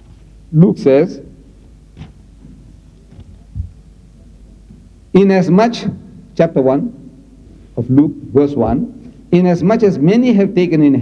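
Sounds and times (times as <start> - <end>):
low steady hum: 0.0 - 11.0
soft low thump: 2.0 - 3.9.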